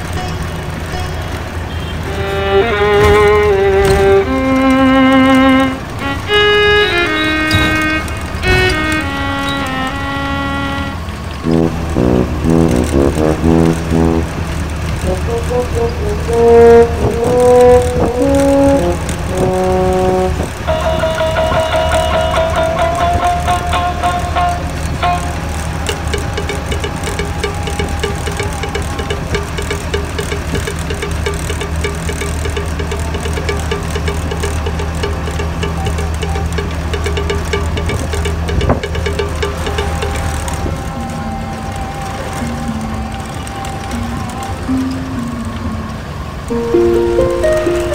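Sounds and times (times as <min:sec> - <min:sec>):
vehicle hum from inside: 0:00.0 - 0:47.9
music: 0:02.0 - 0:47.9.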